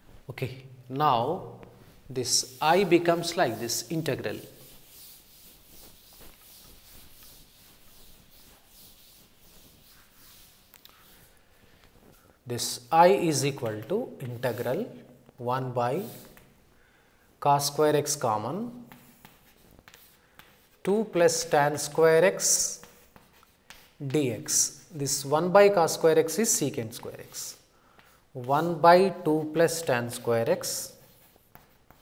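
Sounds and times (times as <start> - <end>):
eraser rubbing on chalkboard: 1.9 - 12.2, 13.3 - 15.0, 15.9 - 16.5, 18.8 - 27.7, 28.4 - 32.0.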